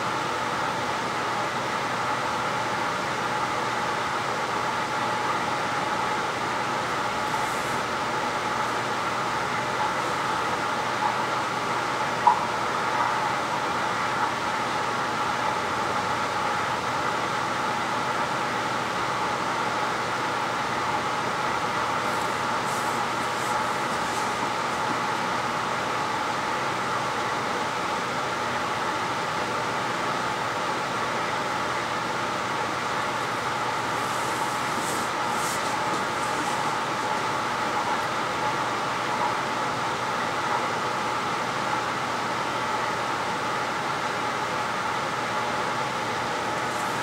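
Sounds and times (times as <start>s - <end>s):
ventilation fan running: 0.0s - 47.0s.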